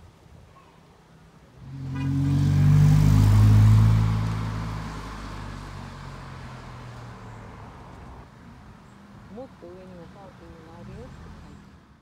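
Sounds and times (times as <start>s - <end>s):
vehicle passing by: 1.6s - 8.3s.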